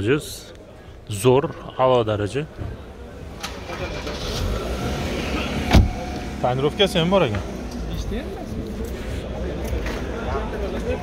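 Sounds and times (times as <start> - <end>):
car door shutting: 3.4 - 6.4.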